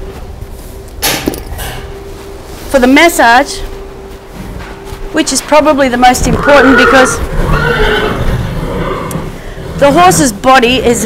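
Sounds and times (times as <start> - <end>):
horse whinnying: 6.2 - 9.4.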